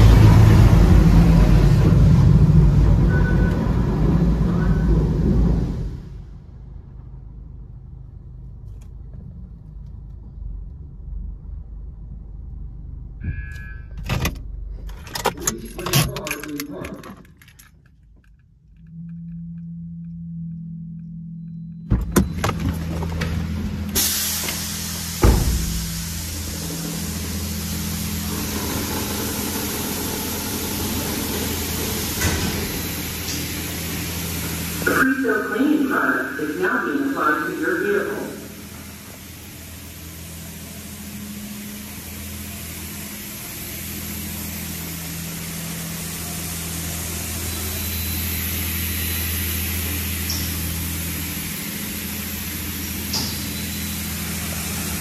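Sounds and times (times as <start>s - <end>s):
steady low hum: 0.0s - 55.0s
high-pressure water spraying: 24.0s - 35.0s, 37.6s - 55.0s.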